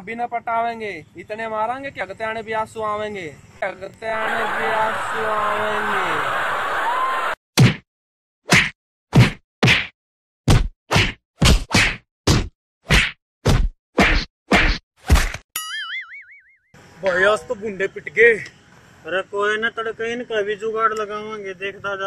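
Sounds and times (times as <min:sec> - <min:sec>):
punch whacks: 0:07.6 - 0:07.8, 0:08.5 - 0:15.4
wobbling cartoon tone: 0:15.6 - 0:16.6.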